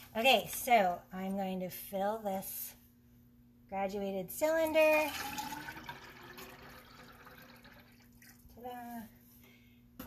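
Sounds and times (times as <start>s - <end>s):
liquid glaze pouring: 5.1s - 8.6s.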